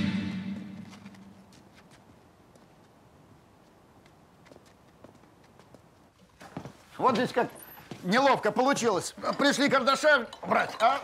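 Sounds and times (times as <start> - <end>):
man speaking: 7.0 - 11.0.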